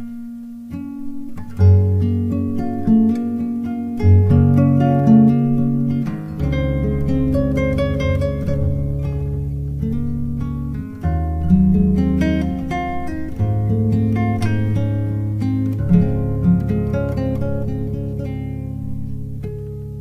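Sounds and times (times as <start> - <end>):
acoustic guitar plucking: 0.0 - 20.0.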